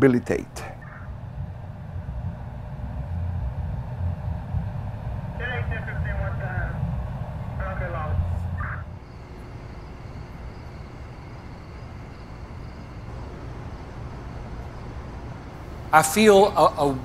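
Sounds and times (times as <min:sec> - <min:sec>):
steady low rumble: 0:00.0 - 0:17.0
indistinct voices: 0:04.2 - 0:17.0.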